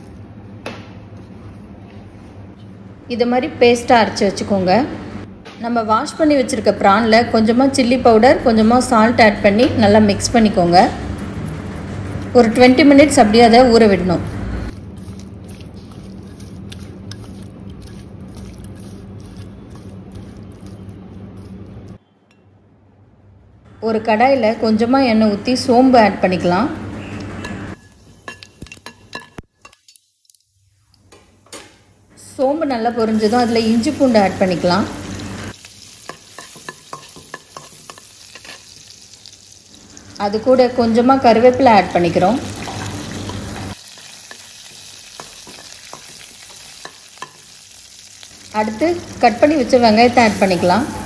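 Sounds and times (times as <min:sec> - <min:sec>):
food sizzling in hot oil: 0:32.9 - 0:51.0.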